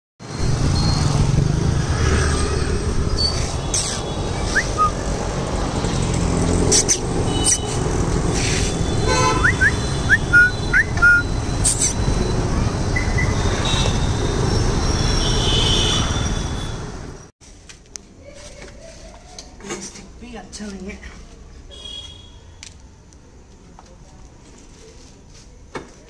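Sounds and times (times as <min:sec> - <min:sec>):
street traffic rumble: 0:00.2 - 0:26.0
high rising chirps: 0:09.4 - 0:13.5.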